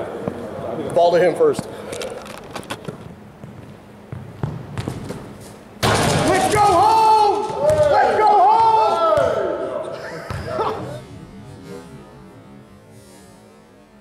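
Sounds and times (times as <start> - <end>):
basketball bouncing on wooden floor: 3.4 - 5.3
players shouting and yelling: 5.9 - 11.2.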